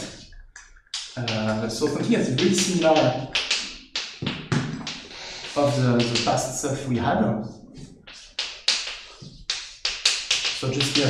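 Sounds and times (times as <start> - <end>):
chalk tapping on blackboard: 1.0 - 6.6, 8.1 - 11.0
chalk scratching on blackboard: 7.8 - 11.0.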